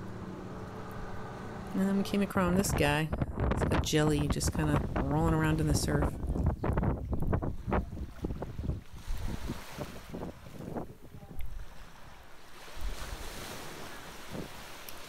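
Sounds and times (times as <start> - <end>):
wind buffeting microphone: 0.1 - 14.7
surf washing over sand: 7.5 - 15.0.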